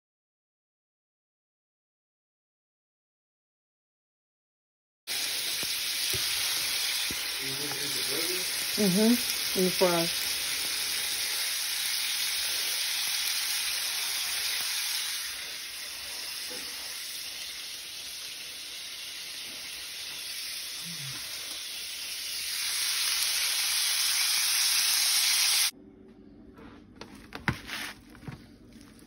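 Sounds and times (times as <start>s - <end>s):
food sizzling in a frying pan: 5.1s - 25.7s.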